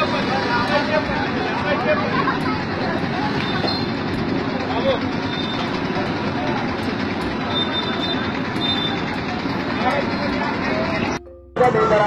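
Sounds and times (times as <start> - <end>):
people talking: 0.0 - 12.0
traffic running: 0.0 - 12.0.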